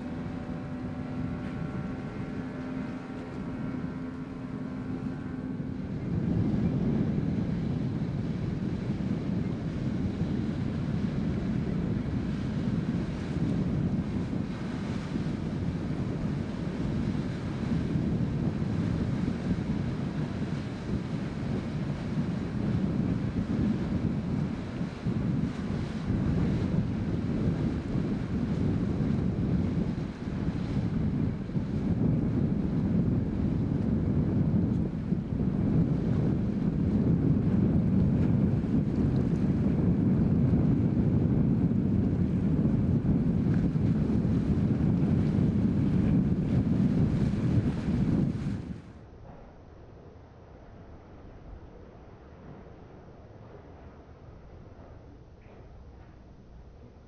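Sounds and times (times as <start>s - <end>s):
strong wind buffeting microphone: 0.0s - 49.1s
droning engine hum: 0.0s - 57.0s.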